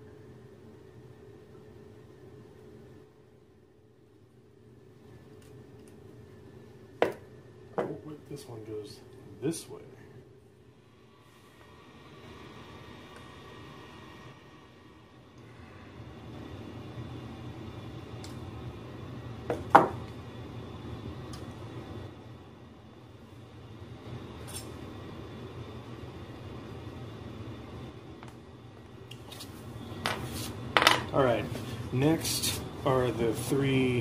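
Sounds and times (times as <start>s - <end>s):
low background hum: 0.0s - 34.0s.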